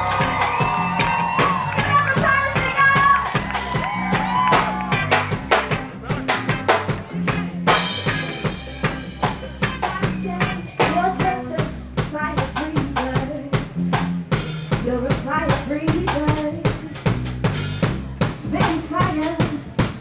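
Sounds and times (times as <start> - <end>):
reggae band playing: 0.0 - 20.0.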